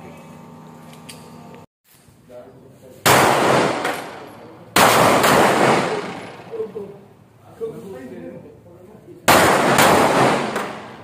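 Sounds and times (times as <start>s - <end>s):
pistol shots with echo: 3.1s - 6.7s, 9.3s - 11.0s.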